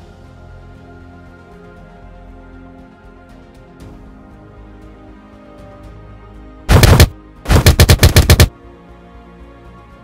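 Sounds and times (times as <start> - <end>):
soft background music: 0.0 - 7.5, 8.5 - 10.0.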